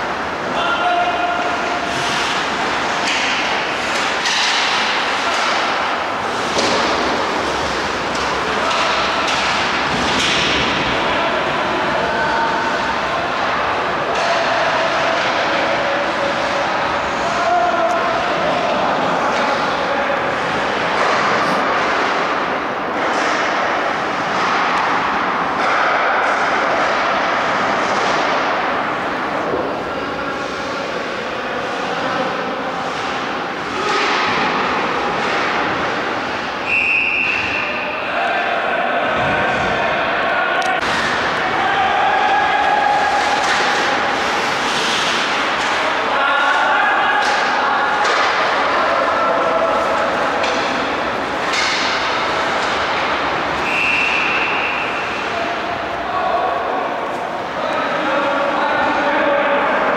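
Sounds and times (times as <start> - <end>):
indoor hall noise: 0.0 - 59.9
hockey sticks and puck knocking: 1.4 - 11.2, 20.4 - 28.8, 32.8 - 36.1, 42.1 - 55.3
skates scraping ice: 40.8 - 46.6.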